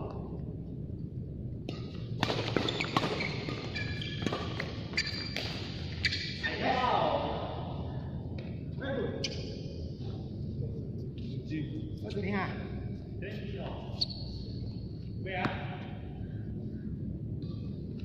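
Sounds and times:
shoes squeaking on court floor: 2.2 - 6.6, 9.2 - 9.6, 13.9 - 14.4.

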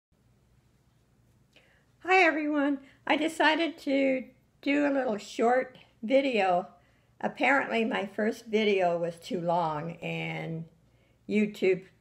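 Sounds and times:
faint steady low hum: 0.1 - 12.0
person speaking: 2.0 - 12.0.

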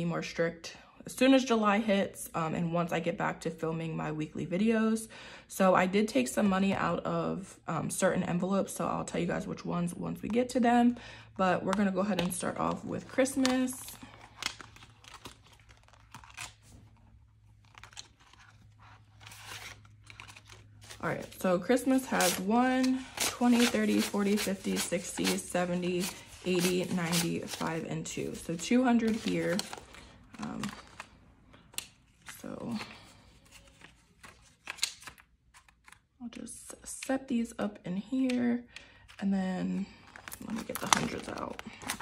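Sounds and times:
plastic crinkling and rustling: 12.2 - 32.8, 40.0 - 42.0
plastic envelope clicks: 13.3 - 16.6, 40.1 - 42.0.

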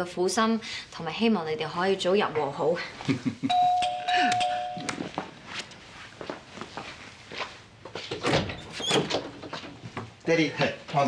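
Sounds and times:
woman laughing: 2.8 - 4.9
two-tone doorbell chime: 3.5 - 5.3.

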